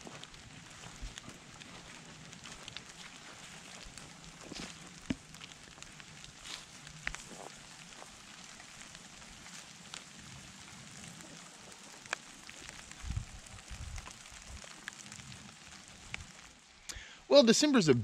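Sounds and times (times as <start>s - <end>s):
raindrop ticks: 0.0s - 17.0s
light rain hissing: 0.0s - 18.0s.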